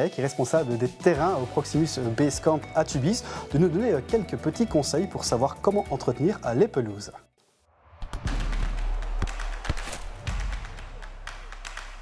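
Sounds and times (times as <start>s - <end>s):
sharp percussive hits: 8.0s - 12.0s.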